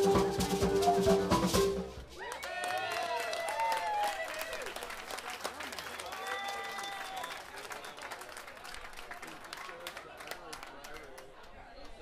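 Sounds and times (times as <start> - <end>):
high whoops: 2.2 - 4.7, 6.0 - 7.4
audience clapping: 2.2 - 12.0.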